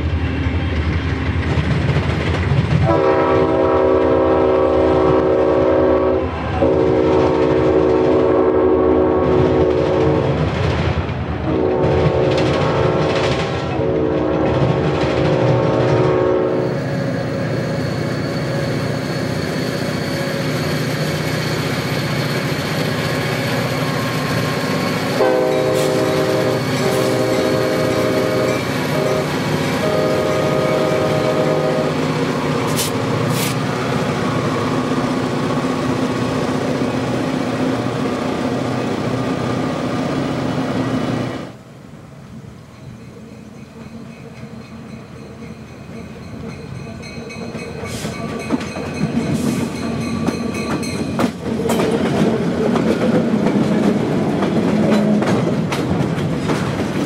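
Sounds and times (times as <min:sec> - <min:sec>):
train rumbling on rails: 0:00.0 - 0:57.0
locomotive horn blasts: 0:02.8 - 0:10.3, 0:11.5 - 0:14.6, 0:15.2 - 0:16.7, 0:25.2 - 0:32.0.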